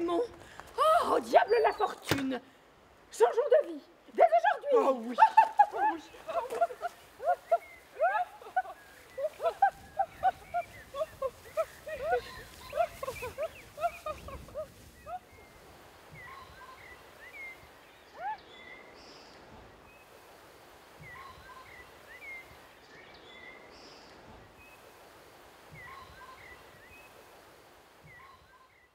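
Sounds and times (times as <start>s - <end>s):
faint hiss: 0.0s - 28.8s
birds chirping and whistling: 6.0s - 20.2s, 21.0s - 24.9s, 25.7s - 27.2s, 28.0s - 28.9s.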